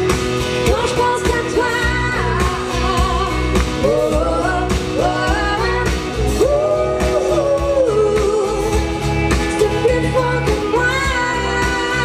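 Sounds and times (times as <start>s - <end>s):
live band playing: 0.0s - 12.0s
woman singing: 0.5s - 12.0s.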